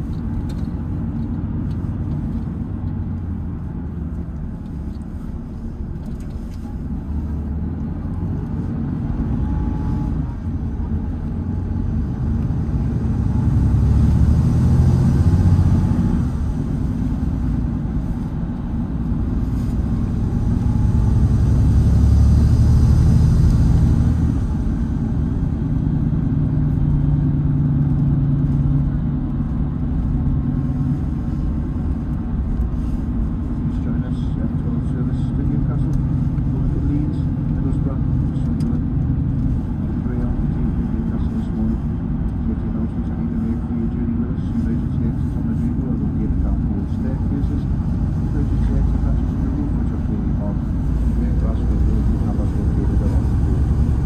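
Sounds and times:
diesel engine drone: 0:00.0 - 0:54.0
road noise: 0:00.0 - 0:54.0.

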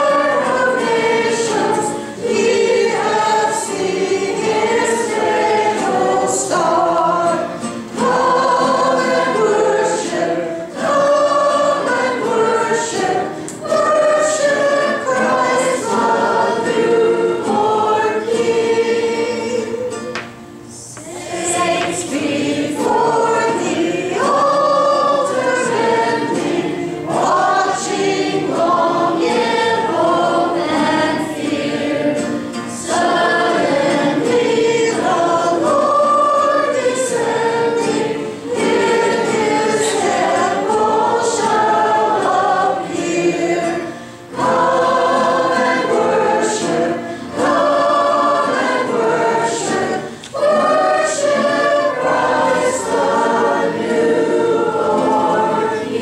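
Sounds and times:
acoustic guitars: 0:00.0 - 0:56.0
girls singing a carol: 0:00.0 - 0:56.0
singers breathing: 0:43.9 - 0:44.3, 0:50.0 - 0:50.3.

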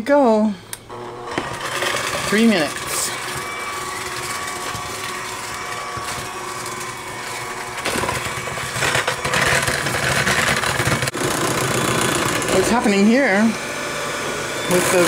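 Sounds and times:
electric hand mixer running: 0:00.9 - 0:15.0.

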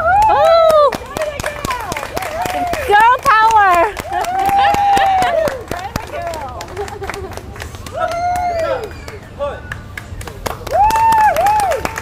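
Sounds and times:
sharp claps and slaps: 0:00.1 - 0:12.0.

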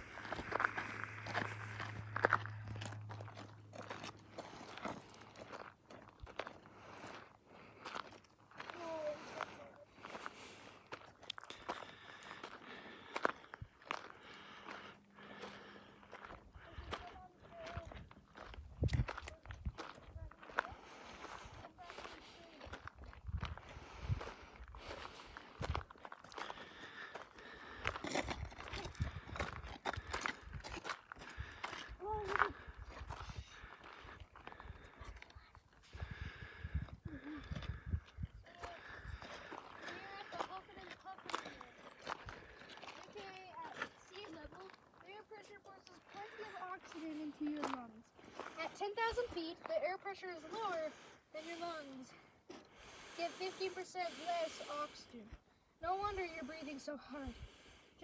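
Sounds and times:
footsteps crunching on gravel: 0:00.0 - 0:36.7, 0:37.4 - 0:51.9.

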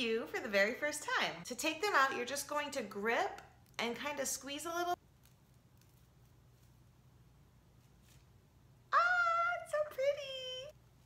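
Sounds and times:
faint soft rustles: 0:05.0 - 0:08.6.

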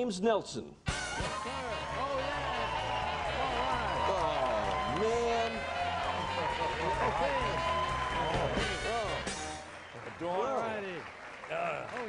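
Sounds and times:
music playing: 0:00.8 - 0:10.4
studio audience cheering: 0:00.9 - 0:12.0.

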